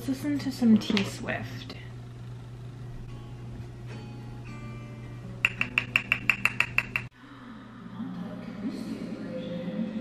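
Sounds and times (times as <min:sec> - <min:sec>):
low steady hum: 0:00.0 - 0:09.8.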